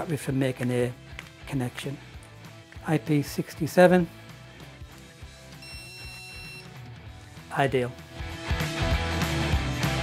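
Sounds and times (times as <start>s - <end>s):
quiet background music: 0.0s - 10.0s
high-pitched detector beep: 5.6s - 6.7s.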